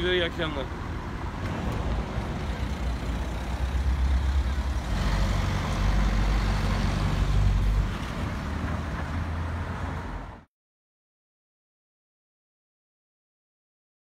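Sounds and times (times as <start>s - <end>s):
road traffic passing: 0.0s - 10.5s.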